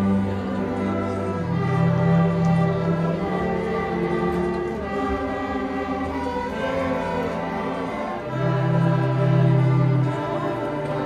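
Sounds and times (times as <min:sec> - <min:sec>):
string orchestra sustained notes: 0:00.0 - 0:11.0.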